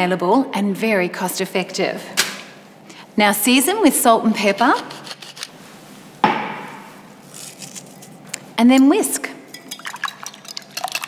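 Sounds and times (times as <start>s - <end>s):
ceramic bowls clinking: 8.7s - 11.0s.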